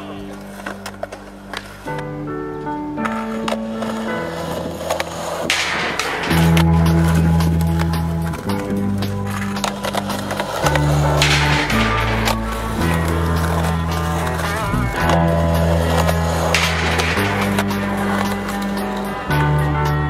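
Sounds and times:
skateboard rolling over concrete: 0.0s - 20.0s
backing music with bass chords: 6.1s - 20.0s.

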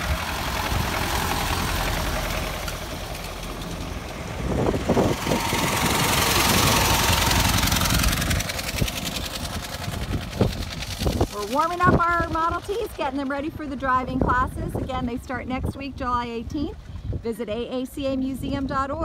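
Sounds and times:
old car engines driving past: 0.0s - 17.2s.

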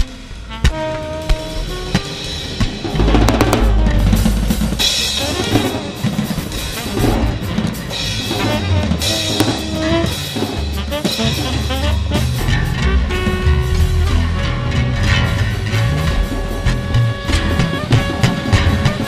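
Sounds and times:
jazz drum kit rolls: 0.0s - 19.0s
low bass notes: 0.0s - 19.0s.

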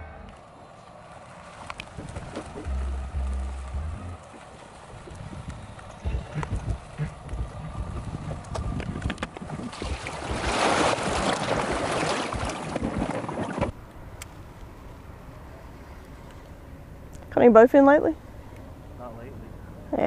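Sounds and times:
trailer rolling on concrete rumble: 0.0s - 9.7s
rushing water splash: 9.2s - 13.8s.

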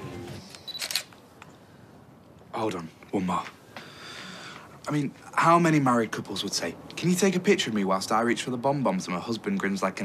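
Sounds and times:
camera shutter click: 0.5s - 1.2s
camera beep: 0.6s - 1.1s.

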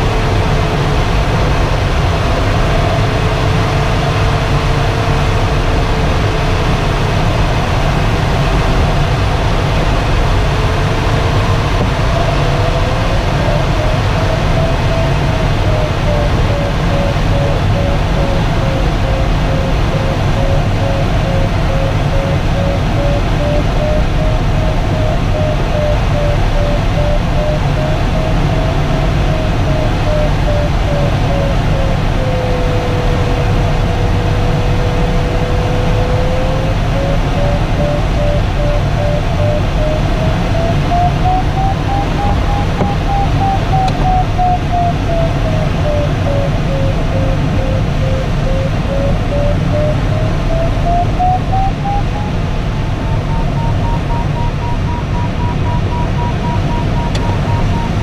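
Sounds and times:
steady low variometer tone: 0.0s - 58.0s
variometer beeping: 8.3s - 58.0s.

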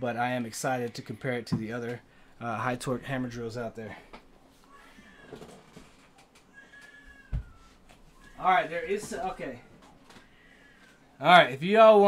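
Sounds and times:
faint knocks of movement: 3.9s - 11.0s.

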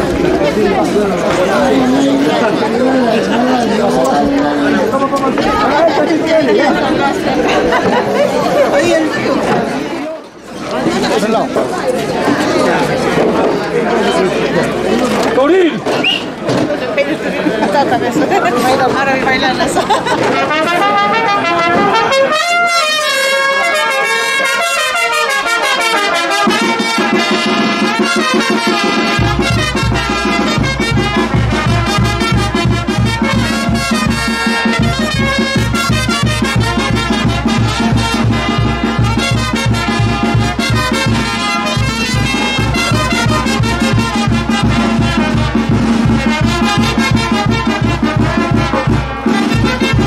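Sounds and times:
brass band playing dance music: 0.0s - 10.0s, 18.5s - 50.0s
crowd chatter: 0.0s - 50.0s.

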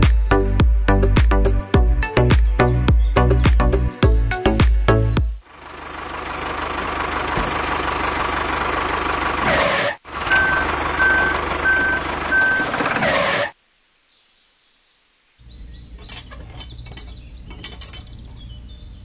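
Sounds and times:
heavy vehicle engine running: 4.0s - 13.5s
reversing alarm beeping: 10.2s - 12.9s.

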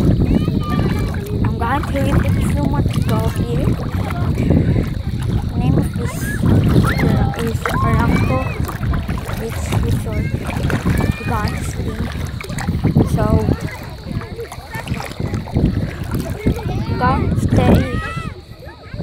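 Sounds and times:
people talking: 0.0s - 19.0s
wind buffeting microphone: 0.0s - 19.0s.

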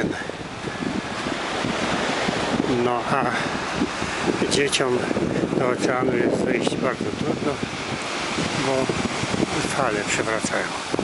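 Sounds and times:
ocean surf on beach: 0.0s - 11.0s
wind buffeting microphone: 0.0s - 11.0s.

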